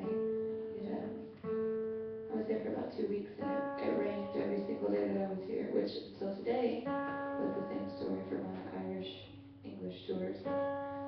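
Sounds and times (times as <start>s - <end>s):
acoustic guitar strumming: 0.0s - 11.0s
woman singing: 2.3s - 10.4s.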